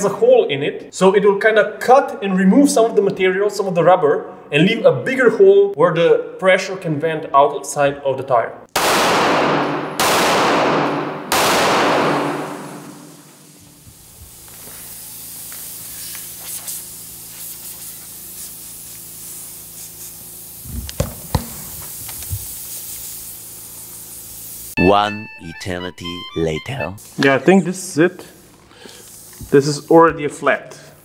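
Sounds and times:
pistol shots: 0:08.8 - 0:13.2
air hissing from tyre: 0:12.6 - 0:24.8, 0:28.2 - 0:30.1.

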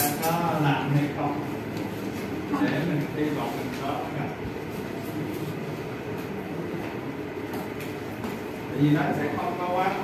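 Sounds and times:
low rumbling background noise: 0:00.0 - 0:10.0.

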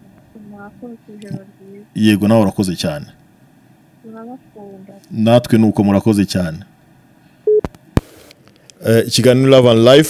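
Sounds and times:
telephone line beep: 0:07.5 - 0:07.7.

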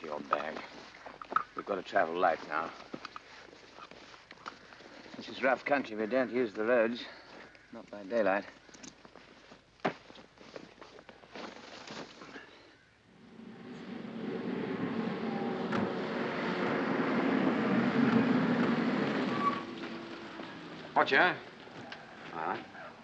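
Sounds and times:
motorcycles and cars driving past: 0:13.1 - 0:23.0.

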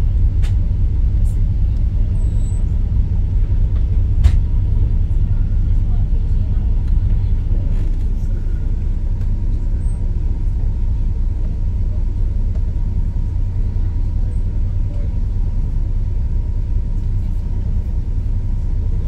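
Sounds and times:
boat engine rumbling: 0:00.0 - 0:19.0.

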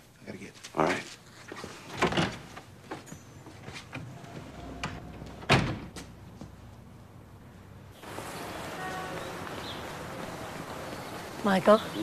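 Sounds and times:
door shutting with a thud: 0:04.8 - 0:06.0.

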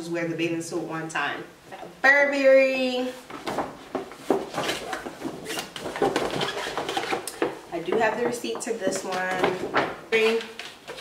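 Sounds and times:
cardboard knocks: 0:03.5 - 0:08.4.

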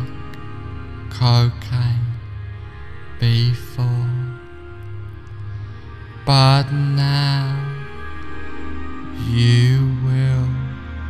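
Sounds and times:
ambient meditation music: 0:00.0 - 0:11.0.

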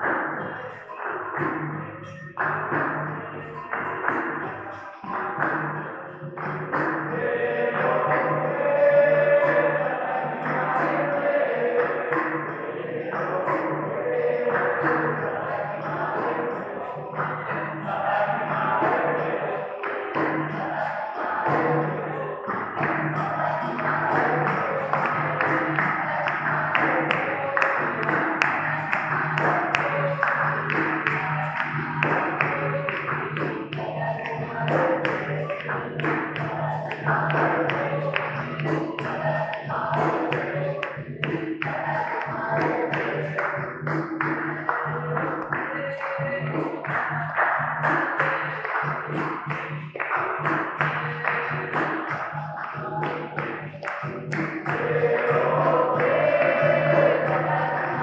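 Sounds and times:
hand clapping: 0:00.0 - 0:58.0
hand drum: 0:00.0 - 0:58.0
people singing: 0:00.0 - 0:58.0.

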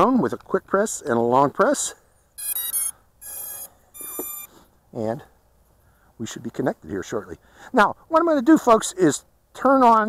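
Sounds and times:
drone electronic beeps: 0:02.4 - 0:04.5.

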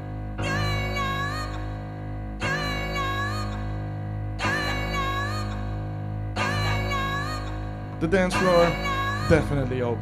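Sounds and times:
steady bass line: 0:05.8 - 0:10.0.

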